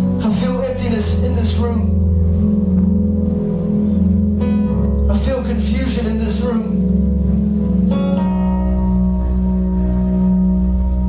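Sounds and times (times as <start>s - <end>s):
long held chords: 0.0s - 11.0s
man speaking over a microphone: 0.2s - 2.0s, 5.1s - 6.9s.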